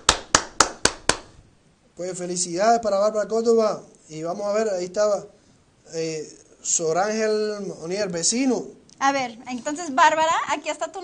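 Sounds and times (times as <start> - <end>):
hands clapping: 0.0 - 1.4.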